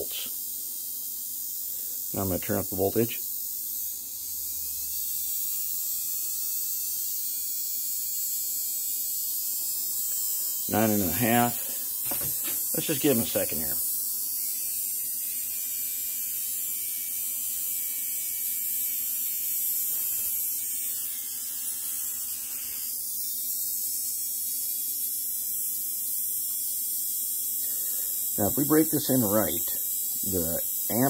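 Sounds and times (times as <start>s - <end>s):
small electric motor humming: 0.0s - 31.0s.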